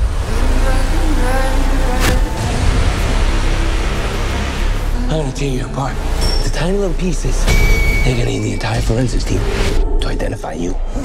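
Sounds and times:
trailer music: 0.0 - 11.0.

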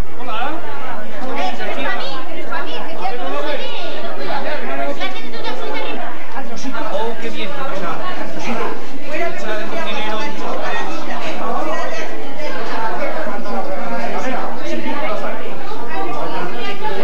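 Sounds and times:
overlapping chatter of voices: 0.0 - 17.0.

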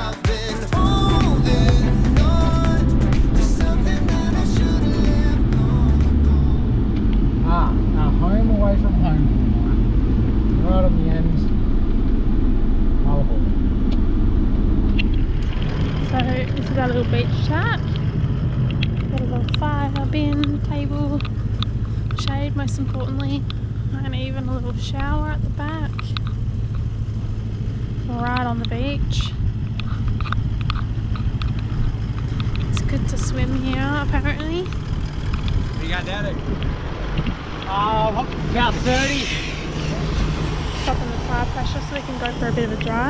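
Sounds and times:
vehicle driving low rumble: 0.0 - 43.0
voices: 15.0 - 27.0, 27.9 - 43.0.

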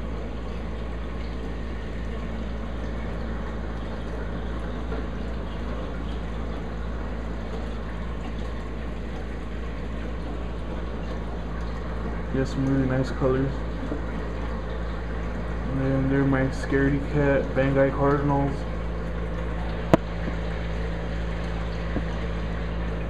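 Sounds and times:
low pump hum: 0.0 - 23.0.

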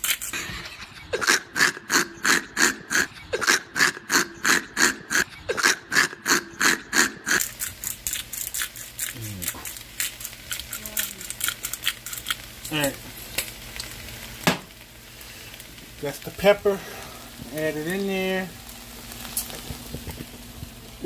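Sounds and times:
shrimp frying in butter: 0.0 - 0.5, 7.3 - 21.0
pepper mill grinding: 0.0 - 2.4, 6.6 - 14.0.

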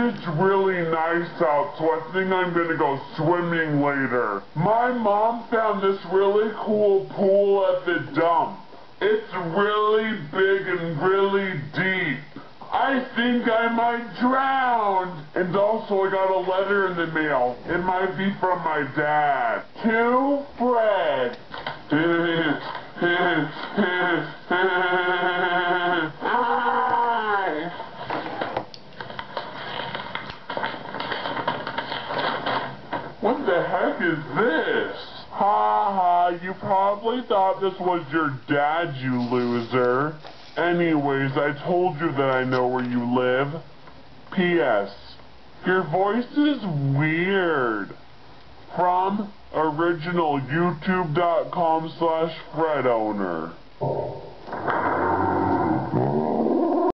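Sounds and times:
boy screaming in low voice: 26.2 - 27.7.

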